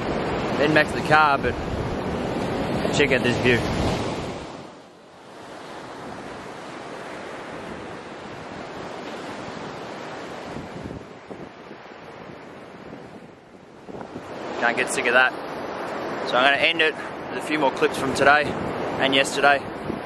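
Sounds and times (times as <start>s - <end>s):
ocean waves breaking on beach: 0.0s - 20.0s.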